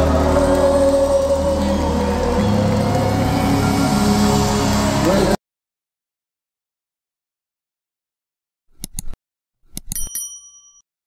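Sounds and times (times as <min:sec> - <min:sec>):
short bell ding: 0:10.0 - 0:10.8.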